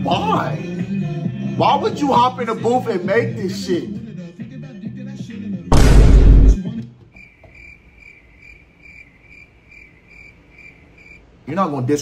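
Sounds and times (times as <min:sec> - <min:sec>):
loud burst of noise: 0:05.7 - 0:06.6
crickets chirping: 0:07.2 - 0:11.4.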